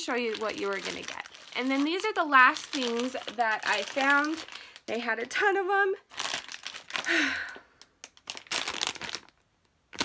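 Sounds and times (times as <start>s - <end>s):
plastic bag crinkling: 0.0s - 10.0s
person sighing: 7.0s - 7.8s.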